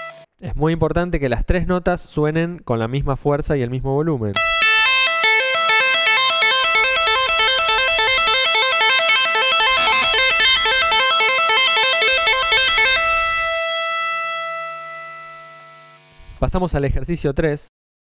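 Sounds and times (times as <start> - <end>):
electric guitar tapping arpeggio: 4.4 - 16.1.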